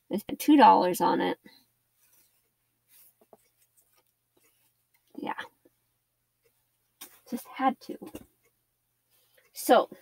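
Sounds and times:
fabric rustling: 0:01.7 - 0:09.6.

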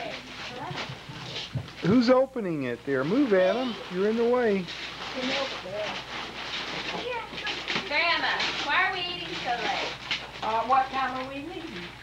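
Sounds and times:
wrapping paper crinkling and tearing: 0:03.1 - 0:12.0.

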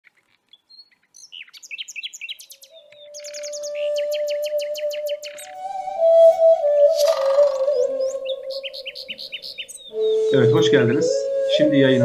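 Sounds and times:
birds chirping and twittering: 0:00.0 - 0:12.0
held music tone: 0:02.7 - 0:12.0.

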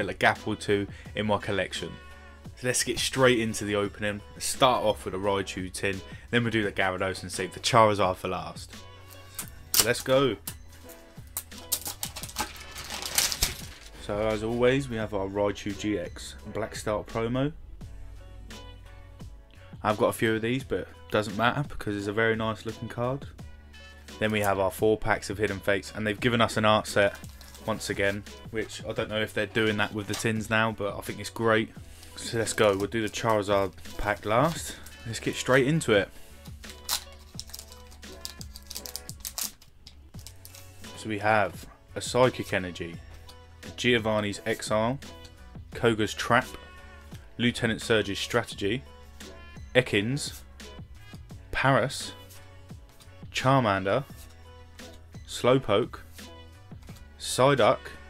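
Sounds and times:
faint background music: 0:00.0 - 0:58.0
plastic wrap crinkling and tearing: 0:11.3 - 0:14.0, 0:27.2 - 0:27.8, 0:36.4 - 0:40.7.

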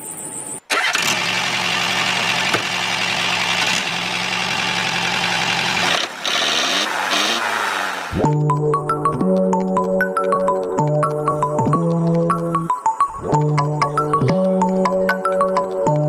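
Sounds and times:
toy electric motor whirring: 0:05.7 - 0:07.5.

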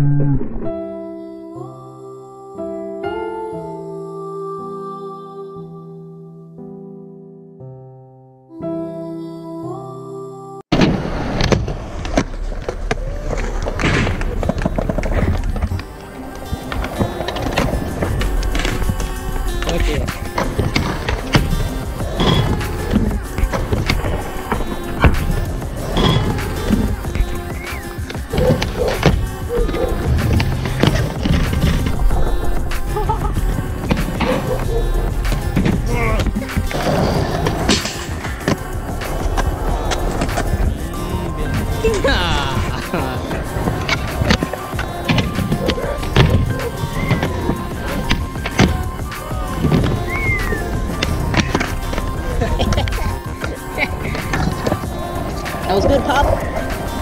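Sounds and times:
background music: 0:00.6 - 0:57.0
skateboard rail slide: 0:10.7 - 0:41.8
skateboards rolling on concrete: 0:10.7 - 0:57.0
skateboard clacks: 0:42.7 - 0:57.0.

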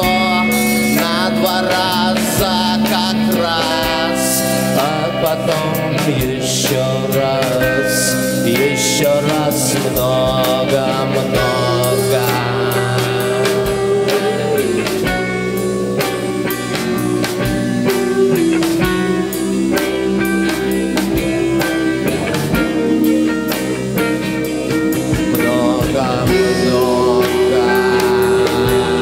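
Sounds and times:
rock band instrumental: 0:00.0 - 0:29.0.

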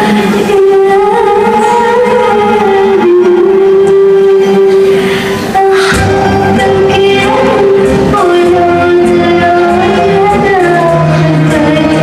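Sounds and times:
arabic music ensemble: 0:00.0 - 0:12.0
woman singing a long note: 0:00.0 - 0:12.0.

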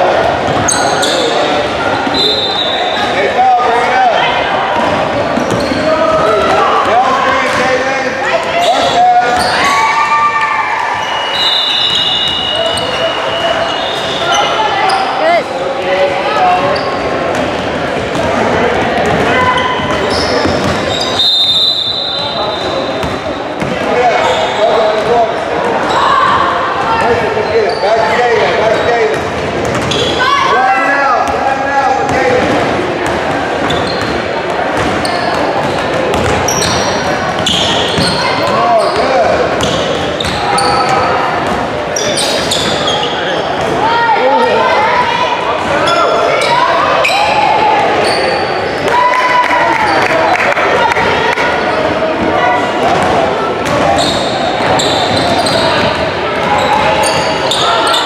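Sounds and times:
sneaker squeaks on court: 0:00.5 - 0:03.1, 0:05.4 - 0:05.9, 0:08.6 - 0:09.7, 0:11.4 - 0:15.2, 0:19.0 - 0:25.1, 0:29.6 - 0:30.3, 0:33.6 - 0:43.7, 0:53.6 - 0:58.0.

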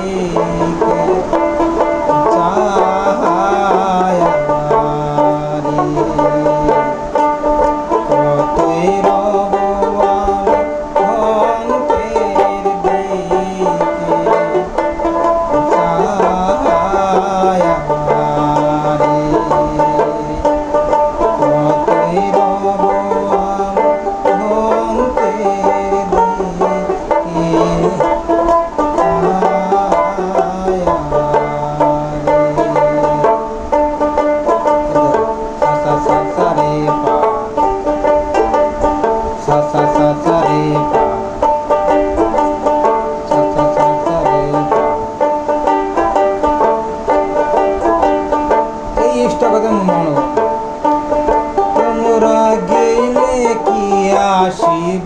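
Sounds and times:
plucked folk lute melody: 0:00.0 - 0:55.0.

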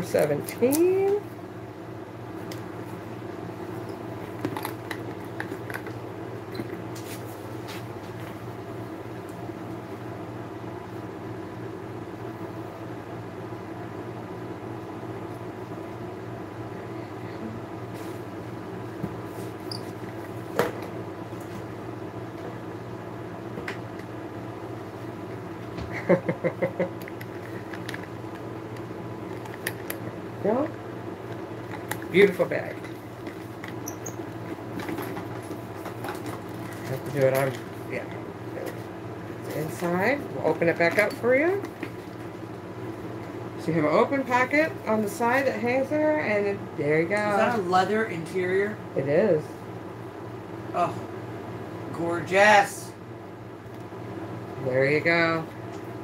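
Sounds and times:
low mechanical hum: 0:00.0 - 0:56.0.

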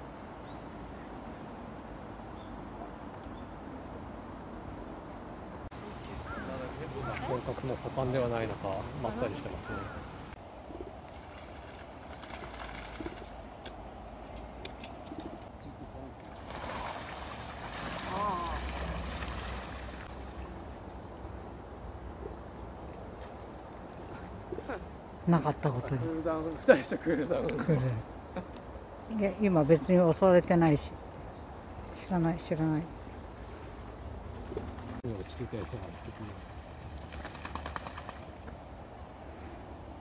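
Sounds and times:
low outdoor rumble: 0:00.0 - 0:40.0
faint bird call: 0:06.1 - 0:07.3, 0:09.6 - 0:10.9
duck splashing water: 0:11.1 - 0:15.5, 0:16.2 - 0:20.7, 0:33.1 - 0:38.6.

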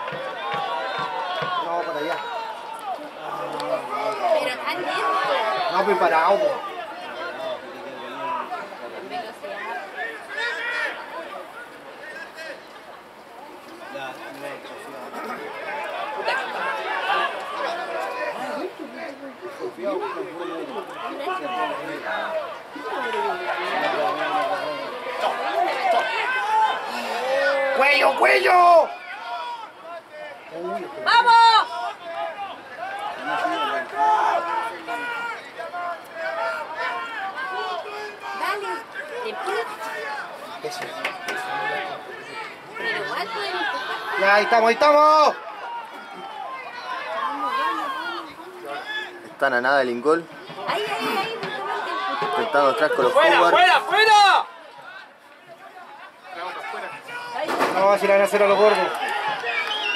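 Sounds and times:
loud shouts: 0:00.0 - 0:12.7, 0:13.8 - 0:59.9
players and spectators chattering: 0:00.0 - 0:59.9.

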